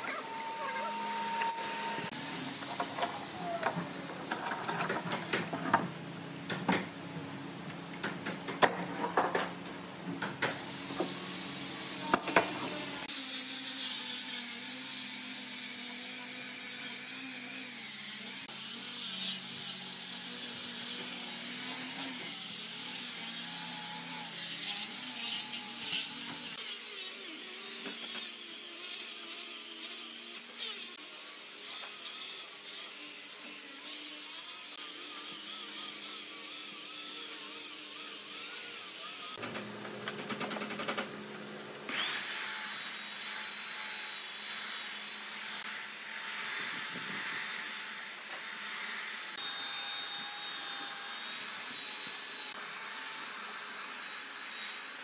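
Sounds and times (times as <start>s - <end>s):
angle grinder motor whine: 0.0s - 3.8s.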